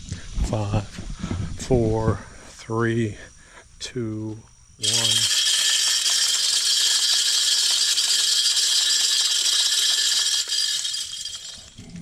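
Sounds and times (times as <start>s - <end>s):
spinner motor whining: 4.8s - 12.0s.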